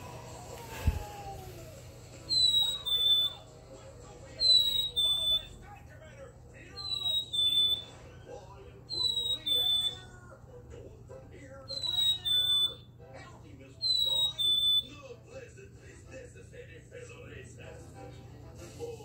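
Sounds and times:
toy playing whistled bird song: 2.2s - 3.5s, 4.4s - 5.6s, 6.7s - 8.1s, 8.9s - 10.1s, 11.6s - 12.9s, 13.8s - 15.0s.

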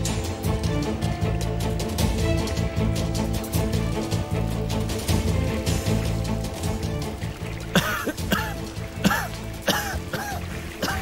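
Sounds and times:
dramatic background music: 0.0s - 11.0s
man coughing: 7.8s - 11.0s.

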